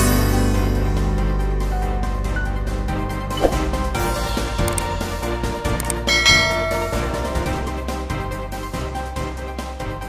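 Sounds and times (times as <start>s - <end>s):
background music: 0.0s - 10.0s
bell chime: 5.9s - 7.8s.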